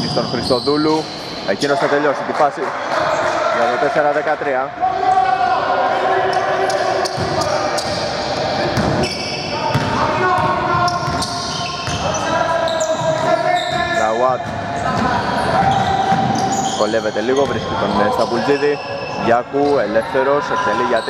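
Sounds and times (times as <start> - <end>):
sneaker squeaks: 0.0 - 2.0, 6.3 - 21.0.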